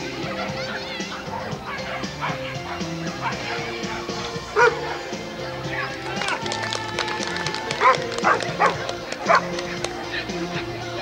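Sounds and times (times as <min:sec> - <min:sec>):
background music: 0:00.0 - 0:11.0
voices: 0:00.0 - 0:11.0
dog barking: 0:01.0 - 0:03.6, 0:04.6 - 0:05.0, 0:07.8 - 0:09.6.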